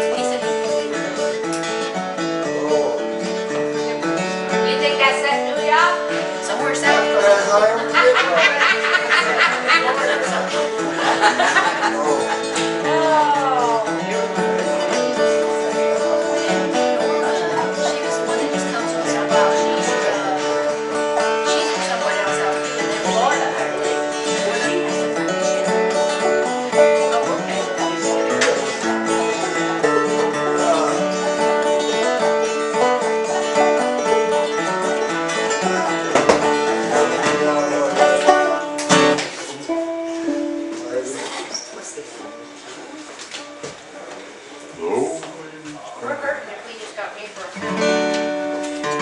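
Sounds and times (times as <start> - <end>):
banjo: 0.0 - 41.5
string band playing a tune: 0.0 - 44.7, 46.2 - 49.0
guitar: 0.0 - 49.0.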